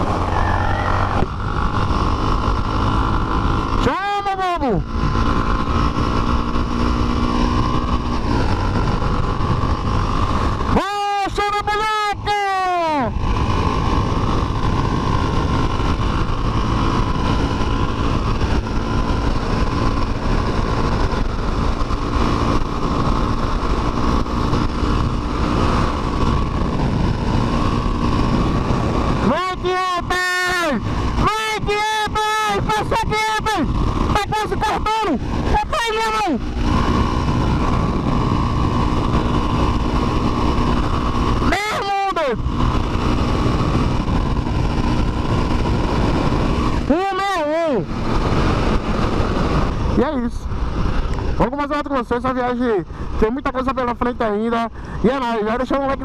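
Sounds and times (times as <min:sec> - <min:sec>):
high wavering pitched sounds: 0:00.0 - 0:01.4
motorcycle engine running: 0:00.0 - 0:56.0
wind rush on microphone: 0:00.0 - 0:56.0.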